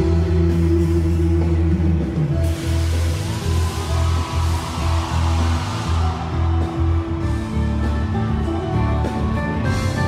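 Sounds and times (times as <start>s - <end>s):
heavy pulsing bass line: 0.0s - 10.0s
live band playing instrumental: 0.0s - 10.0s.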